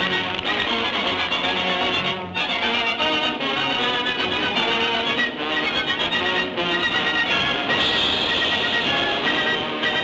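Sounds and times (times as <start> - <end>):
orchestral film music: 0.0 - 10.0.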